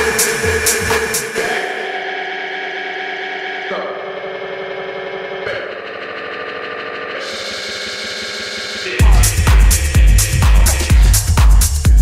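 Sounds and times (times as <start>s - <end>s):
sustained synthesizer chords: 0.0s - 12.0s.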